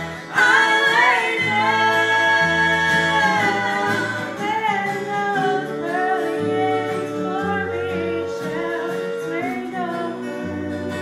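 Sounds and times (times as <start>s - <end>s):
electric bass notes: 0.0s - 11.0s
gospel voices singing in harmony: 0.0s - 11.0s
strummed acoustic guitar: 0.0s - 11.0s.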